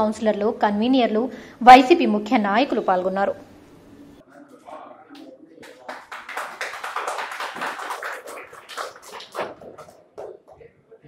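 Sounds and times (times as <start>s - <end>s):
people clapping: 5.1s - 10.6s.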